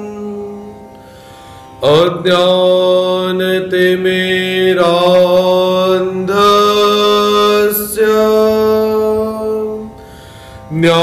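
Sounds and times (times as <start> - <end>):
man chanting: 0.0 - 0.8, 1.8 - 10.0, 10.6 - 11.0
steady drone: 0.0 - 11.0.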